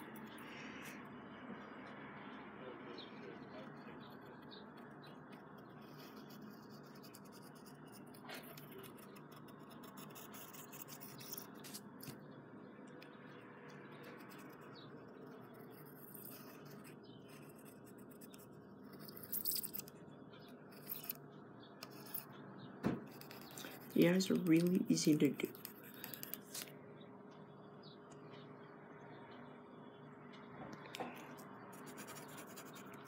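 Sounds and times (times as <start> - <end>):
low room hum: 0.0 - 33.0
pencil sketching on paper: 3.8 - 11.9, 13.8 - 19.3, 23.1 - 24.4, 31.7 - 33.0.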